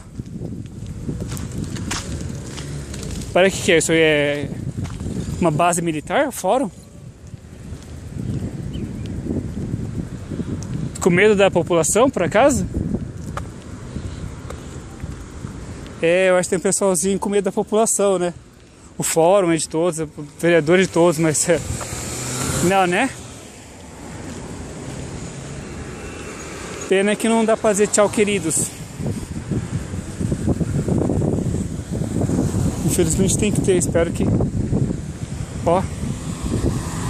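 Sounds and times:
road traffic hiss and rumble: 0:00.0 - 0:37.0
wind buffeting microphone: 0:00.0 - 0:37.0.

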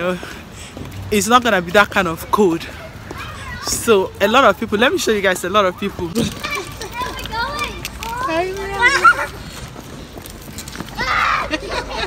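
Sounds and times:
outdoor background noise: 0:00.0 - 0:12.0
young children chattering: 0:01.1 - 0:12.0.

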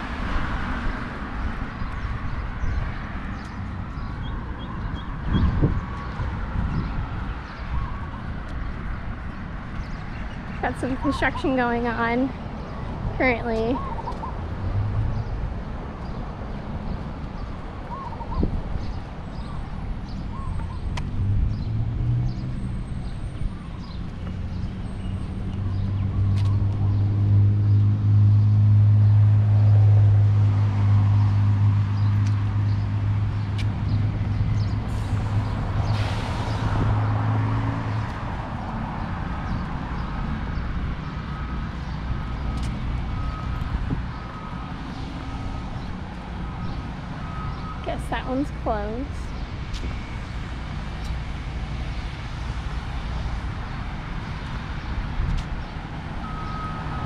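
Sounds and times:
heavy engine drone: 0:34.6 - 0:37.4
reversing alarm beeping: 0:41.3 - 0:45.8, 0:46.4 - 0:47.8, 0:56.2 - 0:57.0.

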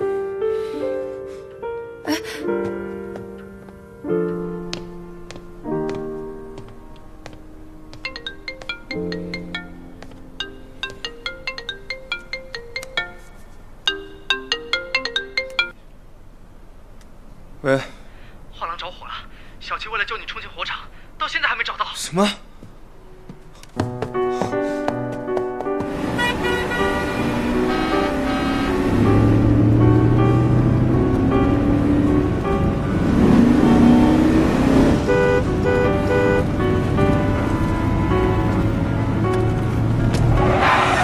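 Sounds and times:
background music: 0:00.0 - 0:15.8, 0:22.8 - 0:41.0
phone ringtone melody: 0:08.0 - 0:15.8
car driving fast on road: 0:25.8 - 0:41.0.

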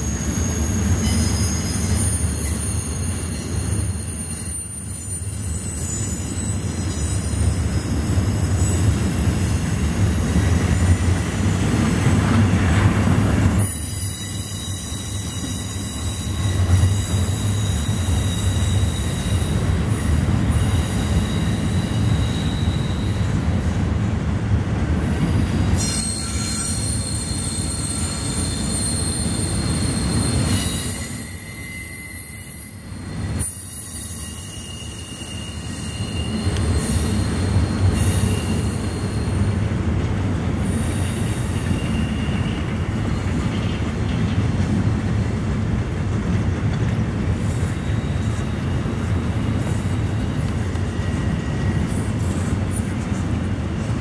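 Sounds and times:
high-pitched wheel squeal: 0:00.0 - 0:10.8, 0:13.6 - 0:23.4, 0:25.3 - 0:39.6, 0:40.6 - 0:43.8
train wheels rumbling on rails: 0:00.0 - 0:54.0.

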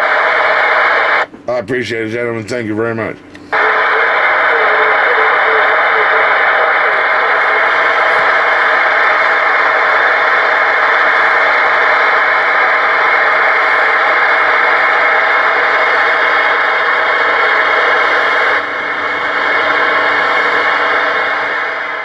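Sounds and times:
radio receiver static hiss: 0:00.0 - 0:01.3, 0:03.4 - 0:22.0
faint steady tones: 0:03.3 - 0:22.0.

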